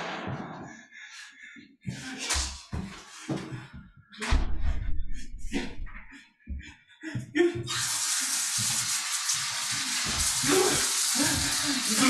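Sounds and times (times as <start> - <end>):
soft low thuds: 3.8 - 6.7
steady hiss: 7.7 - 12.0.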